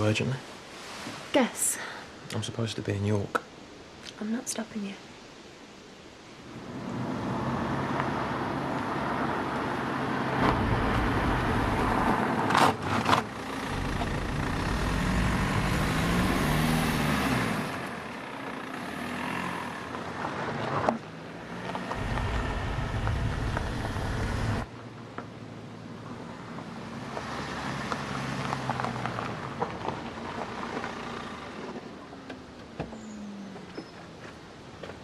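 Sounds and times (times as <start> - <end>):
car engines revving: 6.5 - 24.7, 26.1 - 33.7.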